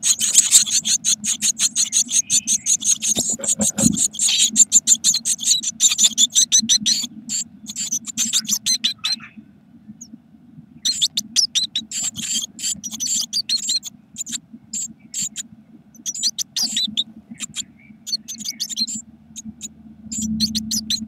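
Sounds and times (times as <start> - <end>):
nestlings begging calls: 0.0 - 9.4, 10.8 - 21.0.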